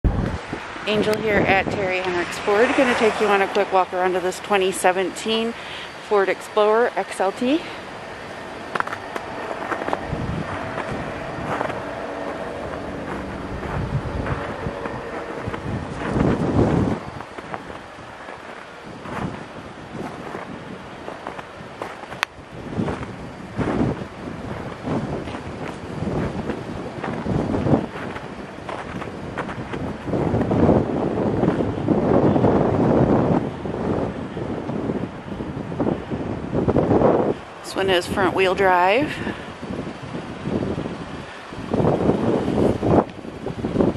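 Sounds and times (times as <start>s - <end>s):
wind buffeting microphone: 0.0s - 43.9s.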